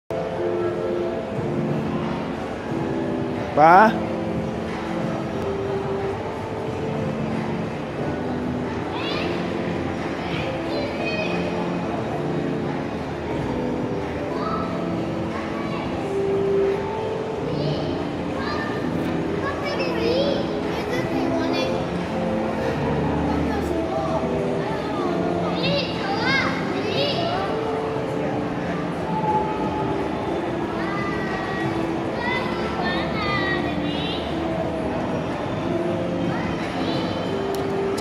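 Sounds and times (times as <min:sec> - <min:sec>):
chatter of people and children: 0:00.1 - 0:38.0
general hubbub: 0:00.1 - 0:38.0.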